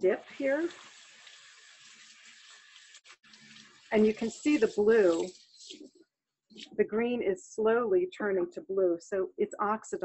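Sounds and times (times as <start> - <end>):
tap water running into sink: 0.0 - 5.6.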